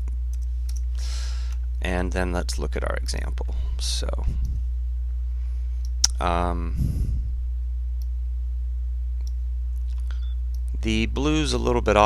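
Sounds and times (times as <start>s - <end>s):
low electrical hum: 0.0s - 12.0s.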